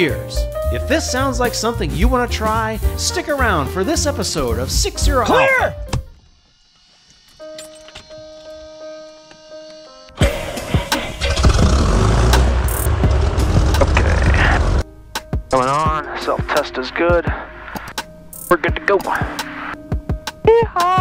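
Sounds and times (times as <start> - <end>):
airplane engine running: 10.2 - 14.8.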